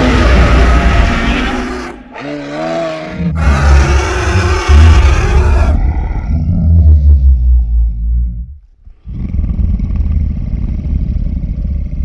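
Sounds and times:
deep rumble: 4.4s - 12.0s.

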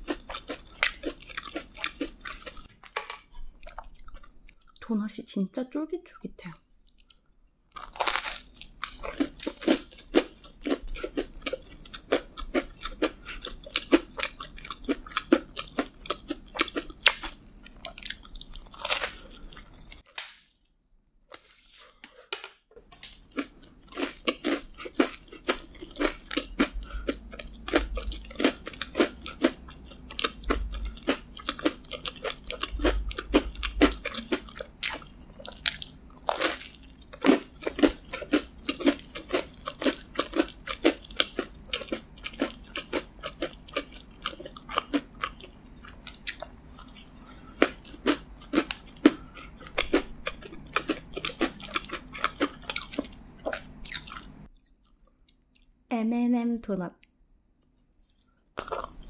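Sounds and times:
crunchy donut chewing: 0.0s - 4.8s, 7.0s - 20.1s, 23.4s - 55.0s.

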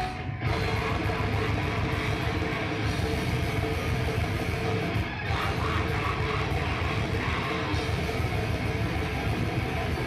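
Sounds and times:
electric guitar: 0.0s - 10.0s
hardcore band playing live: 0.0s - 10.0s.

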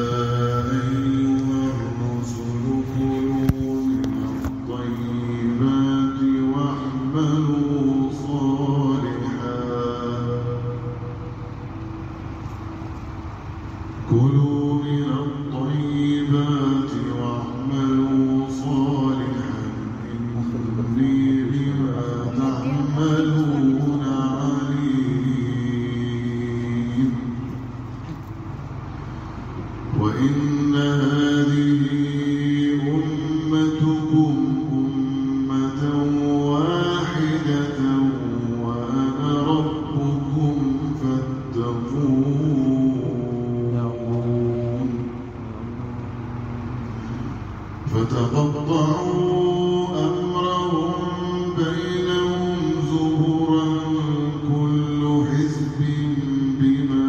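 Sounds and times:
men chanting a devotional hymn: 0.0s - 12.2s, 13.5s - 57.0s
steady low drone: 0.0s - 57.0s.

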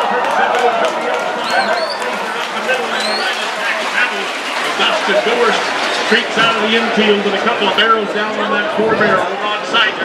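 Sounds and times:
man announcing over public address: 0.0s - 10.0s.

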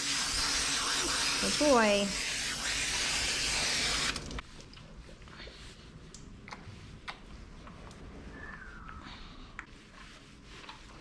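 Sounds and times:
hose sprayer spraying water: 0.0s - 4.4s.

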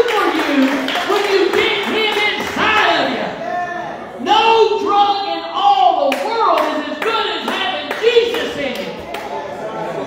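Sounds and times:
man preaching amplified: 0.0s - 9.0s.

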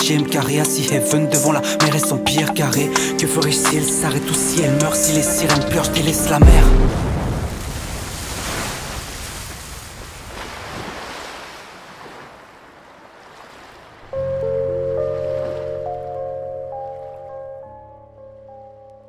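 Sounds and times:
quiet music with low bass: 2.6s - 7.0s
surf washing on beach: 2.8s - 15.8s.

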